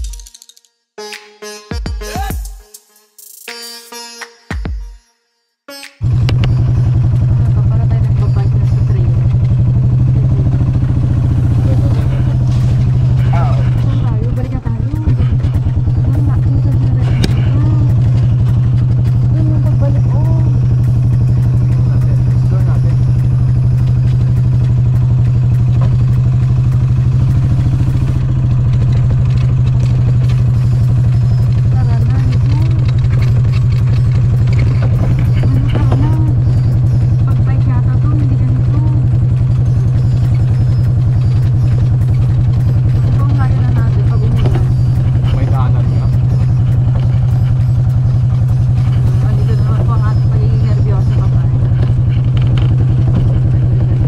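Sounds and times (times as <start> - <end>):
golf cart motor humming: 6.0 - 54.0
woman speaking: 7.4 - 9.2, 11.6 - 12.4, 13.4 - 18.1, 19.3 - 20.6, 31.7 - 32.9, 35.4 - 36.5, 37.2 - 39.0, 43.2 - 46.3, 49.2 - 51.7.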